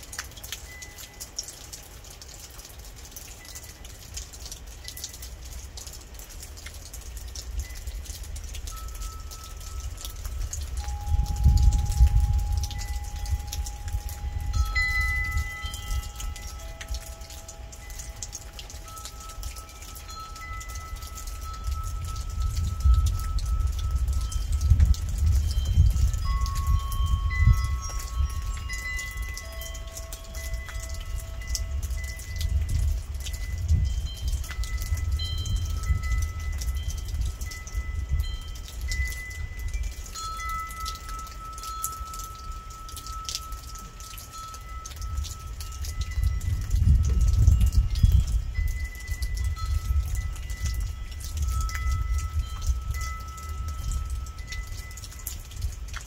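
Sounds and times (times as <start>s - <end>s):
rain patter: 0.0s - 56.0s
wind chimes ringing: 0.0s - 56.0s.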